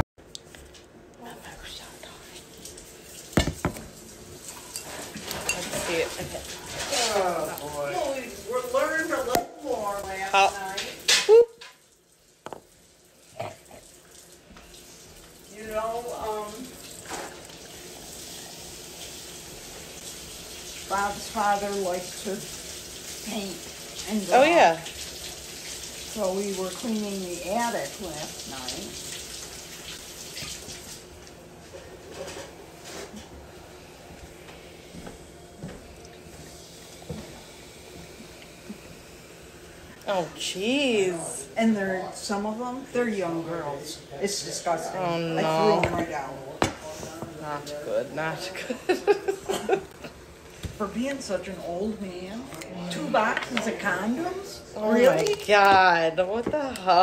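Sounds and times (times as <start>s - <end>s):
sparkling drink pouring and fizzing: 1.2s - 56.2s
handling bottle and glass: 3.4s - 3.9s
woman's voice: 5.4s - 11.5s, 15.5s - 16.7s, 23.2s - 24.9s, 26.2s - 28.9s, 40.0s - 46.4s, 47.4s - 49.8s, 50.7s - 57.0s.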